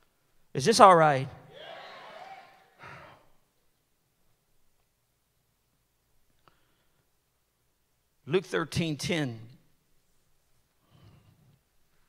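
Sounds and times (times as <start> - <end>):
sigh-like breath: 2.8 - 3.3.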